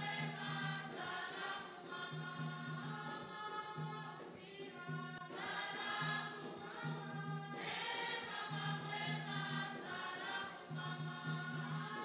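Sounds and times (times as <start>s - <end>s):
choir singing a hymn: 0.0s - 12.0s
steady high rattle: 0.0s - 12.0s.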